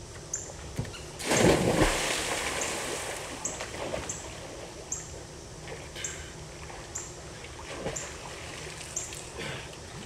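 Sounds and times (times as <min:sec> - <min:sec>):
big splash into water: 0:01.2 - 0:04.1.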